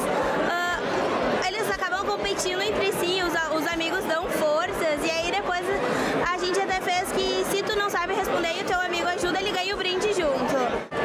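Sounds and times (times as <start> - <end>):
crowd chatter: 0.0 - 11.0
woman speaking into microphone: 1.4 - 10.8.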